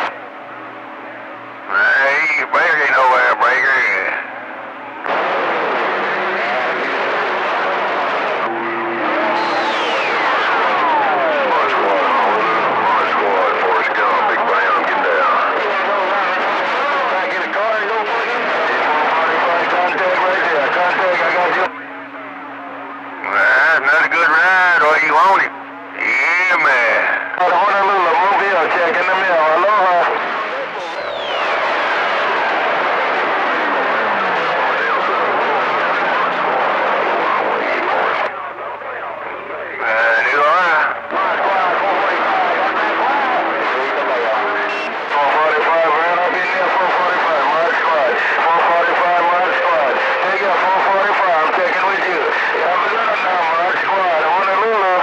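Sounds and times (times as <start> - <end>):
men's voices over radio: 1.7 - 4.3, 8.4 - 21.8, 23.2 - 31.9, 33.3 - 55.0
radio static: 1.7 - 4.3, 5.0 - 21.9, 23.1 - 55.0.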